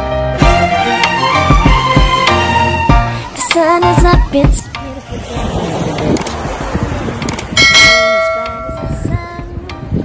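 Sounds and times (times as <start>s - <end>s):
bell ding: 7.6s - 8.9s.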